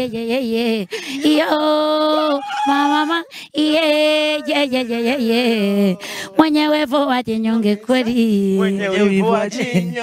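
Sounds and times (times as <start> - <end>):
woman singing unaccompanied: 0.0 - 9.9.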